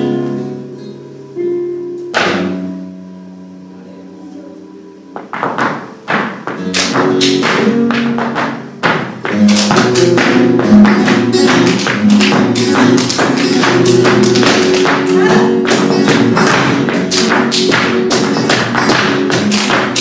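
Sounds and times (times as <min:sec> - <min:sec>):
flamenco guitar playing: 0:00.0 - 0:20.0
dancer's shoes striking stage floor: 0:02.0 - 0:02.8, 0:05.2 - 0:20.0
hand-clapping: 0:05.6 - 0:20.0.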